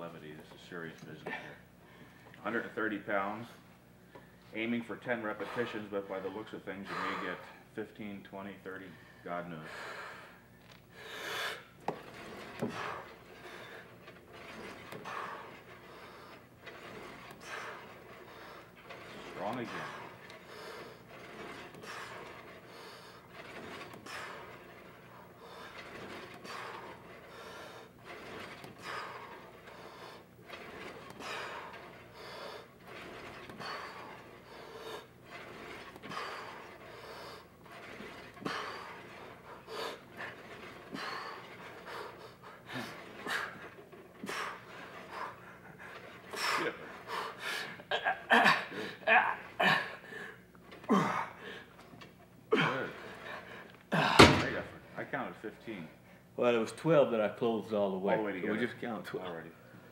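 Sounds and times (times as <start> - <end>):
man panting: 6.8 - 7.7, 9.0 - 11.6, 38.3 - 51.8.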